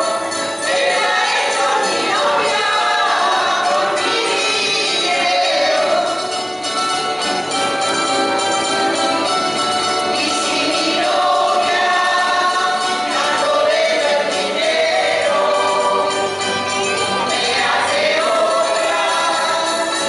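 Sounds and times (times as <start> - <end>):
group of voices singing: 0.0 - 6.6, 10.0 - 20.0
guitars and plucked strings: 0.0 - 20.0.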